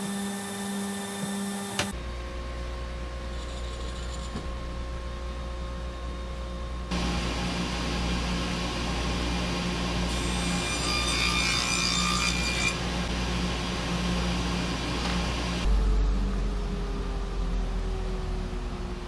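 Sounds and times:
saw blade cutting panel: 10.0 - 12.8.

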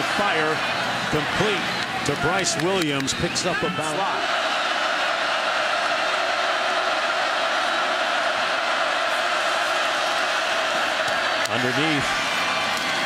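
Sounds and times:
stadium crowd din: 0.0 - 13.0.

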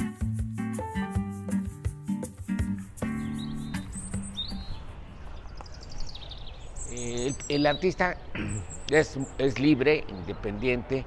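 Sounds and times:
background music: 0.0 - 5.0
small bird chirping: 2.9 - 10.6
outdoor background noise: 2.9 - 11.0.

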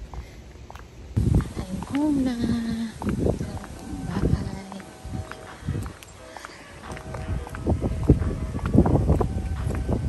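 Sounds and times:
footsteps on concrete: 0.0 - 10.0.

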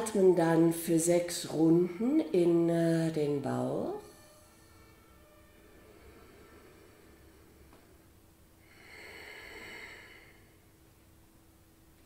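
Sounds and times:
woman breathing: 4.0 - 10.8.

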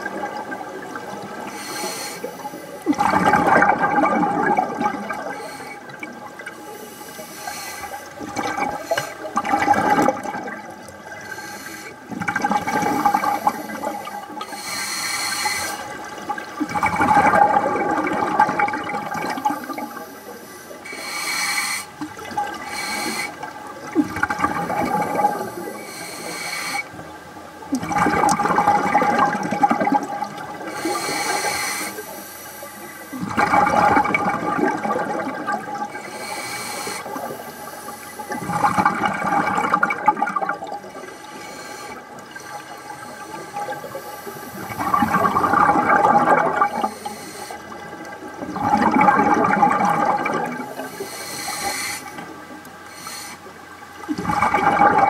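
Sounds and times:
regulator hissing inhalations: 1.5 - 2.8, 5.3 - 5.9, 6.7 - 9.3, 11.3 - 12.0, 12.9 - 15.9, 19.4 - 22.0, 22.6 - 23.4, 25.4 - 26.9, 30.7 - 33.2, 35.9 - 38.6, 41.0 - 44.8, 46.8 - 47.7, 50.7 - 52.2, 52.9 - 53.5
bubbling exhalations underwater: 2.9 - 6.2, 8.2 - 11.2, 12.1 - 14.3, 16.1 - 20.0, 23.8 - 25.5, 27.8 - 30.7, 33.2 - 35.9, 38.3 - 41.0, 44.6 - 47.0, 47.7 - 51.0, 54.0 - 55.0.

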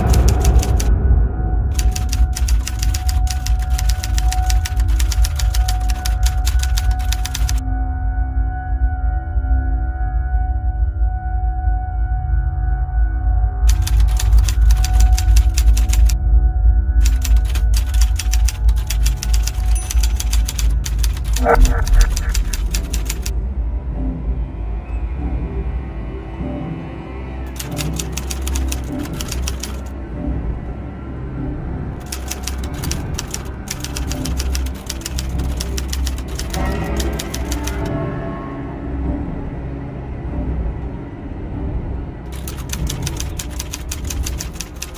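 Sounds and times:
typewriter keys typing: 0.0 - 0.9, 1.7 - 7.6, 13.7 - 16.2, 17.0 - 23.3, 27.5 - 29.9, 32.0 - 37.9, 42.3 - 44.9
low music drone: 0.0 - 44.9.

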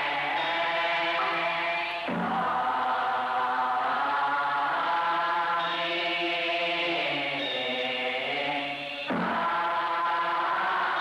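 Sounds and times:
monks chanting together: 0.0 - 11.0.

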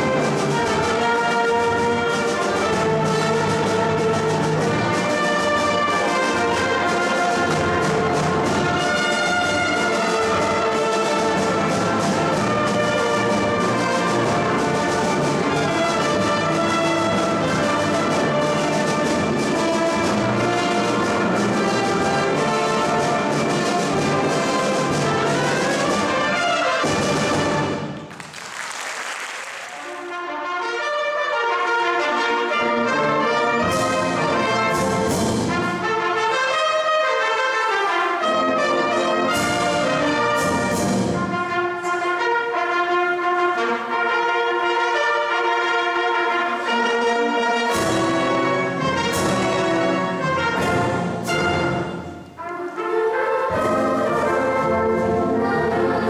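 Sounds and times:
concert band with brass playing: 0.0 - 56.0.

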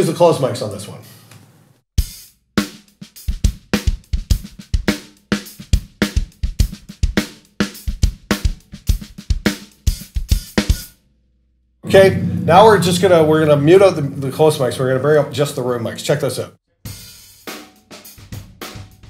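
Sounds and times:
rock drum beat: 2.0 - 10.9, 11.9 - 15.2, 16.9 - 19.0.

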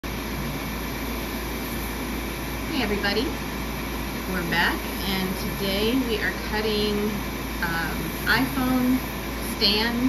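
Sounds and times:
constant low hum: 0.0 - 10.0
laser cutter fan whirring: 0.0 - 10.0.

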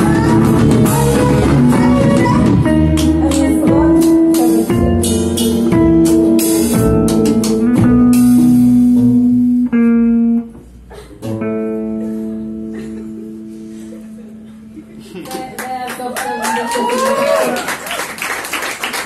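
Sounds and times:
live band playing: 0.0 - 12.7
audience cheering: 15.7 - 19.0.

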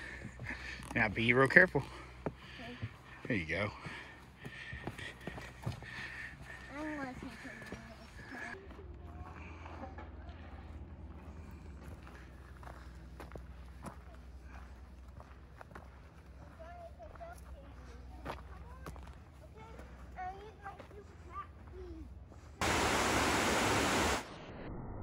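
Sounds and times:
footsteps on dirt path: 0.0 - 22.8
background hiss: 22.6 - 24.2
waterfall rushing: 22.6 - 24.3.

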